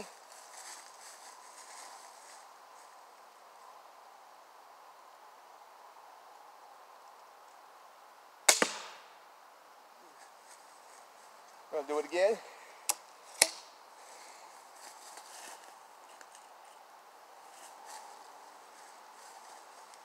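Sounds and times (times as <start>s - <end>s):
pistol crossbow firing crack: 8.4s - 9.1s, 12.9s - 13.8s.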